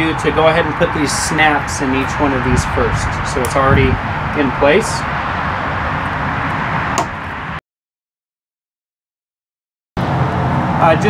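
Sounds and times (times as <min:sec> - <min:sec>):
outdoor rumble and hiss: 0:00.0 - 0:07.6, 0:10.0 - 0:11.0.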